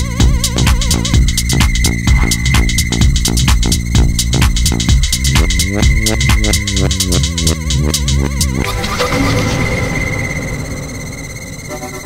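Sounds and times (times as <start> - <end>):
rumbling noisy bed: 0.0 - 12.0
steady high synth tone: 0.0 - 12.0.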